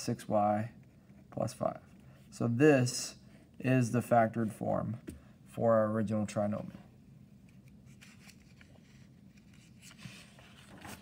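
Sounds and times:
paper sliding across desk: 7.9 - 11.0.

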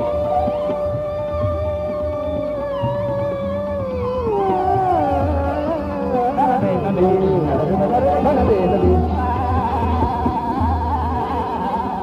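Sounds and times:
light tabla strokes: 0.0 - 12.0
tanpura drone: 0.0 - 12.0
man singing long sliding note: 4.0 - 12.0.

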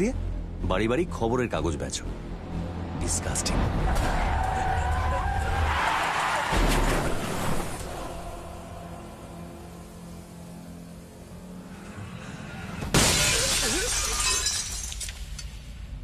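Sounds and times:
low tense film drone: 0.0 - 12.9
loud crash with glass shattering: 12.8 - 15.2.

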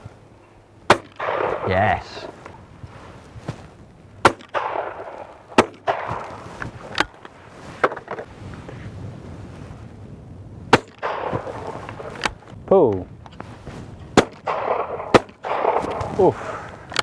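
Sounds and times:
shotgun shots with echo: 0.9 - 1.7, 4.2 - 6.4, 10.7 - 11.8, 14.2 - 16.1
faint cracks: 4.3 - 8.8.

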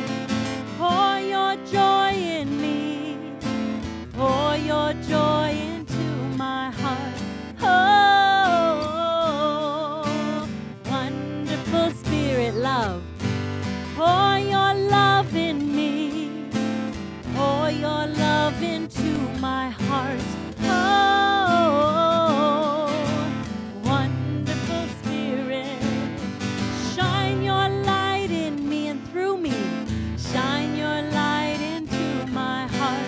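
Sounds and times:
acoustic guitar: 0.0 - 33.0
woman singing into a microphone: 0.0 - 33.0.

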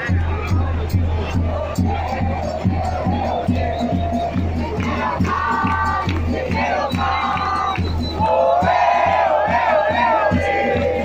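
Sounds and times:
bass drum beat: 0.0 - 11.0
crowd chanting: 0.0 - 11.0.

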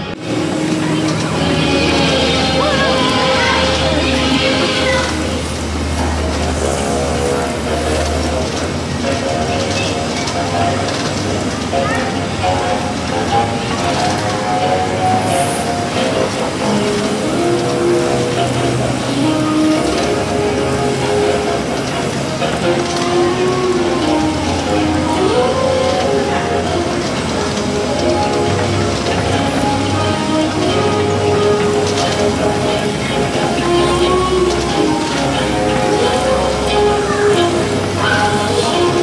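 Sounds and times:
slow melody of long held notes: 0.0 - 39.0.

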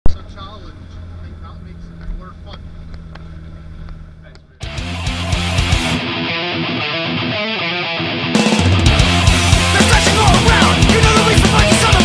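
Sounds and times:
car engine idling: 0.2 - 5.6.

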